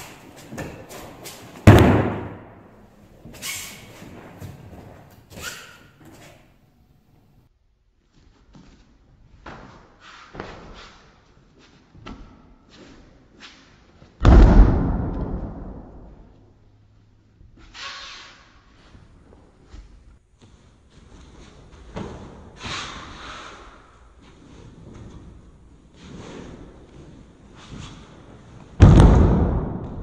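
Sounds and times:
body landing on mat with thud: 28.8 - 30.0.

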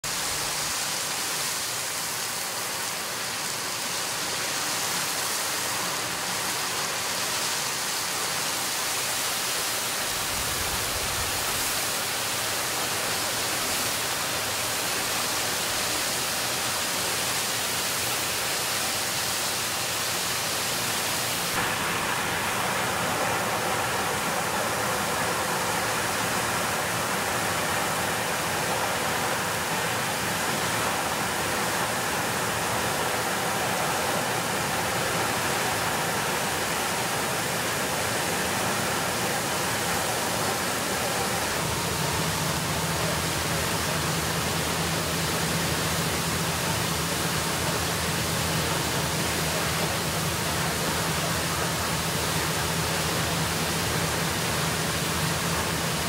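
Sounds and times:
water jetting with rushing hiss: 0.0 - 56.0.

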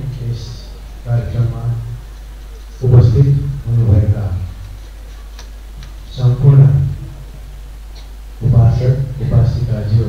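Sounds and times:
man speaking into a microphone: 0.0 - 2.0, 2.7 - 4.6, 6.1 - 7.2, 8.4 - 10.0
steady low hum: 0.0 - 10.0.

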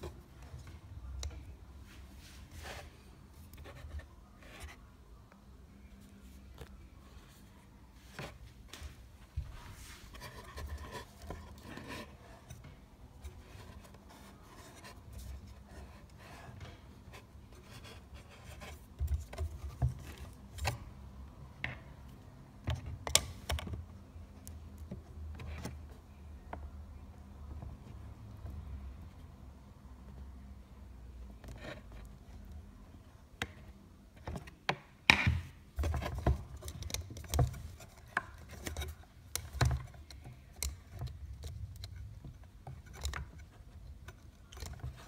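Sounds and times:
plastic parts clicking and knocking: 33.4 - 45.0.

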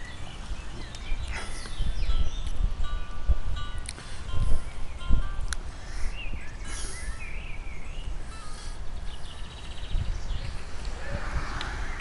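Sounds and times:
birds chirping: 0.0 - 12.0
wind rumble on microphone: 0.0 - 12.0.

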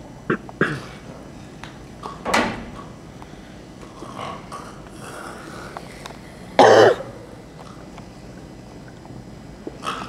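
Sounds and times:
loud cough: 0.3 - 1.0, 6.6 - 7.1.

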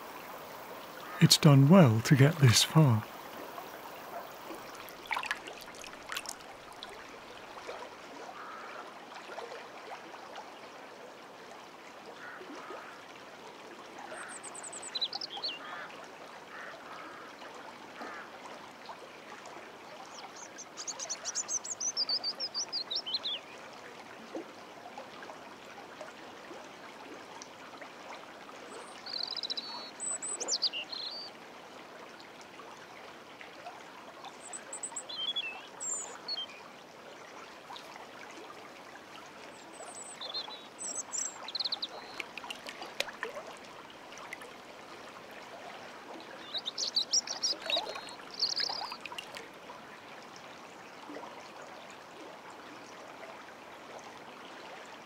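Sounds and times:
songbird singing: 0.0 - 5.1, 14.2 - 15.7, 20.1 - 23.4, 28.7 - 31.3, 34.4 - 36.6, 39.6 - 42.8, 46.3 - 49.2
rushing river water: 0.0 - 55.0.

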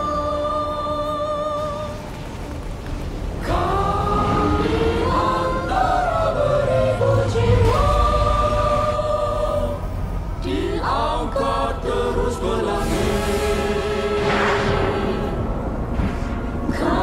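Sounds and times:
voices singing in chorus: 0.0 - 2.1, 3.4 - 17.0
musical backing: 0.0 - 17.0.

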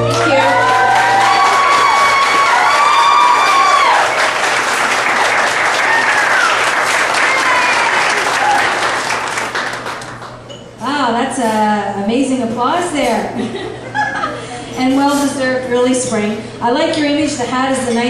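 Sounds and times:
whoops and cheers: 0.0 - 4.4, 5.5 - 8.9
audience applauding: 0.0 - 10.5.

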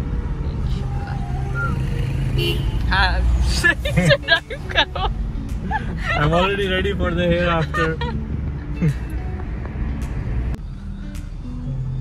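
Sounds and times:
engine and road rumble: 0.0 - 12.0
person laughing: 7.5 - 8.2, 8.8 - 9.1.

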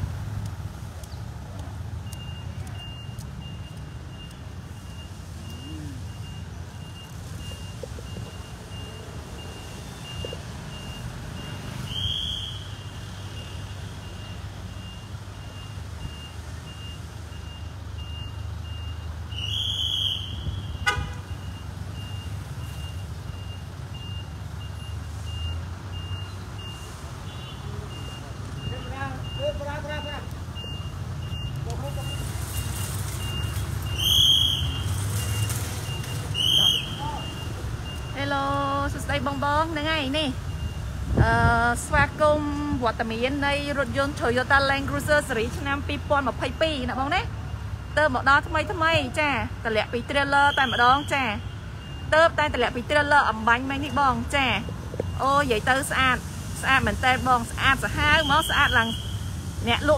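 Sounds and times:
high electronic beeps: 35.2 - 38.2.

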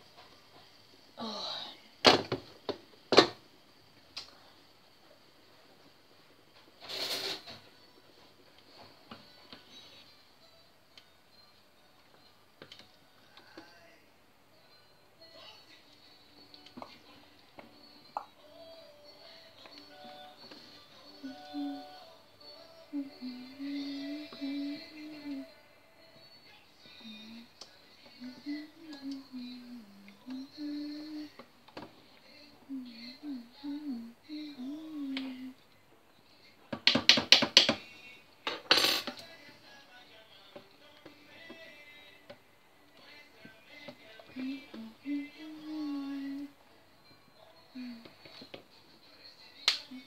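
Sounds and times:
woman humming: 1.2 - 1.8, 18.2 - 25.7, 26.8 - 31.4, 32.3 - 35.6, 44.2 - 46.6, 47.4 - 48.4.

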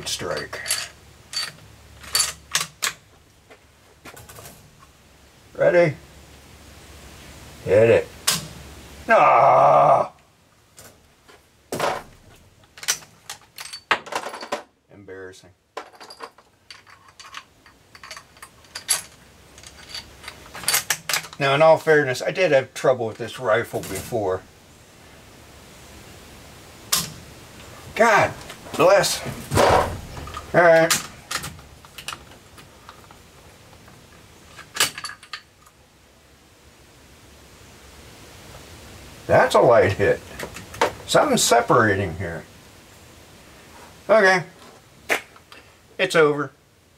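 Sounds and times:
small metallic clicks: 16.2 - 21.4.

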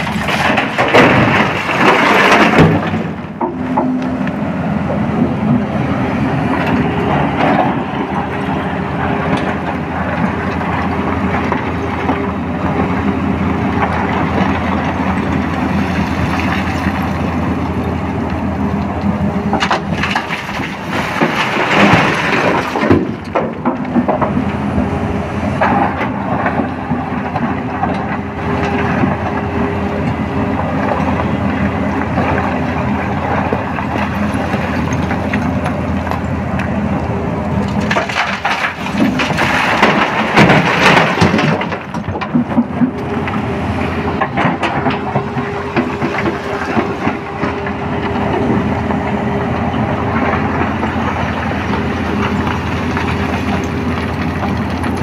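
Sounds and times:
rock clattering into truck: 0.0 - 3.5, 37.8 - 42.8
excavator diesel engine: 0.0 - 55.0.

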